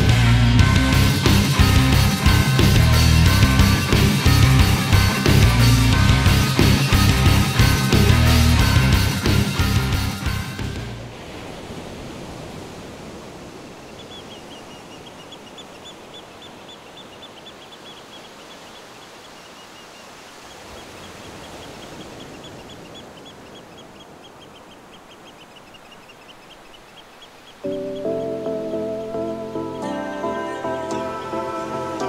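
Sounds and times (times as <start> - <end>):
rock music: 0.0 - 11.0
soft music: 0.0 - 11.1, 27.6 - 32.0.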